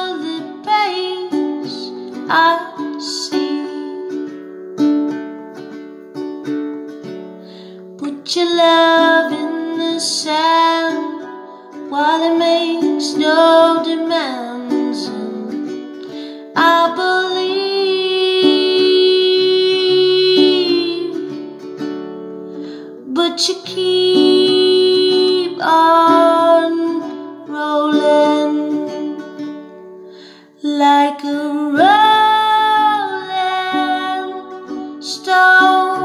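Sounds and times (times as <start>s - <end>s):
woman singing: 0.0s - 4.5s, 8.0s - 21.8s, 22.9s - 29.9s, 30.6s - 36.0s
acoustic guitar: 0.0s - 36.0s.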